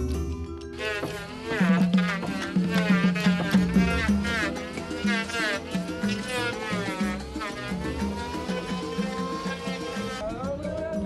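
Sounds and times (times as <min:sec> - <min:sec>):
electric hand planer buzzing: 0:00.7 - 0:10.2
rhythmic music with steady beat: 0:00.8 - 0:11.0.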